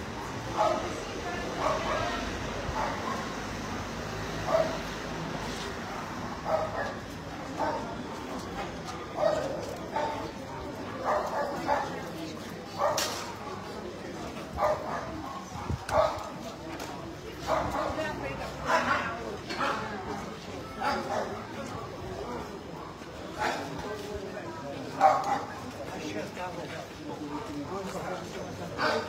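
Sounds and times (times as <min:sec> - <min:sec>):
murmur of voices: 0:00.0 - 0:29.0
dog barking: 0:00.2 - 0:00.9, 0:02.8 - 0:03.4, 0:04.5 - 0:04.8, 0:06.4 - 0:07.0, 0:07.6 - 0:07.9, 0:09.2 - 0:10.3, 0:11.0 - 0:12.0, 0:12.8 - 0:13.2, 0:14.6 - 0:16.3, 0:20.8 - 0:21.4, 0:25.0 - 0:25.5.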